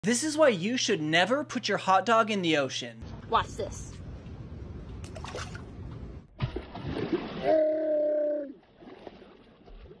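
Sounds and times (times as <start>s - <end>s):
water splashing against boat: 5.0s - 7.6s
person crying out: 7.4s - 8.6s.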